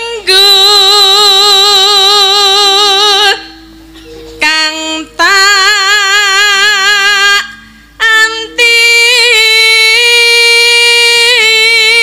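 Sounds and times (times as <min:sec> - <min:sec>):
woman singing long note: 0:00.0 - 0:03.8, 0:04.4 - 0:12.0.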